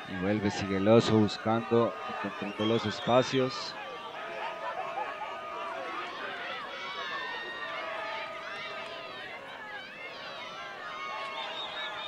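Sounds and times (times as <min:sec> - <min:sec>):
many voices shouting and calling: 0:00.0 - 0:12.0.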